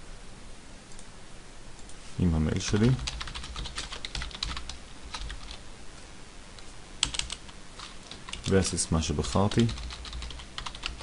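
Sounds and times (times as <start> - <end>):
keyboard typing: 2.6 - 5.6, 7.0 - 11.0.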